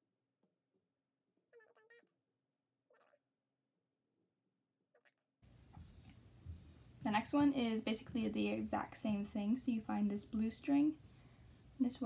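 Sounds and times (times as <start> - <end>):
faint steady hum: 5.5 - 12.0.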